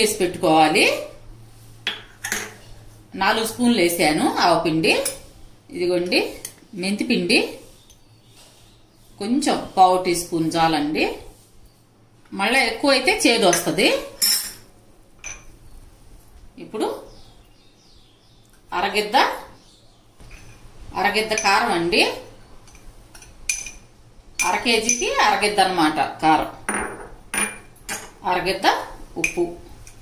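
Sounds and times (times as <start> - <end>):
spoon clinking against steel bowl: 22.6 - 23.8, 24.4 - 25.1.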